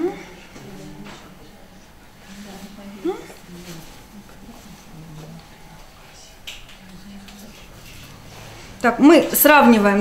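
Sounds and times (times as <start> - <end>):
muffled voices: 0.0 - 10.0.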